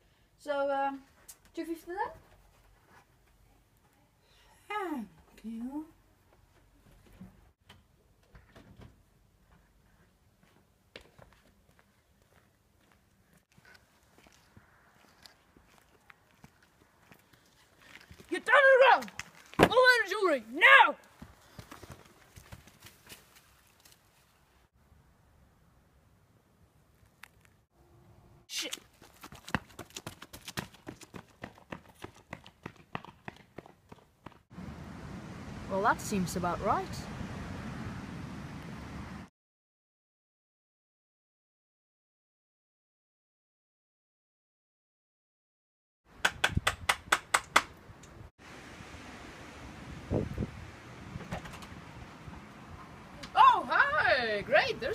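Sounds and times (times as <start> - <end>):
footsteps on paving: 9.6 - 19.9, 28.7 - 34.5.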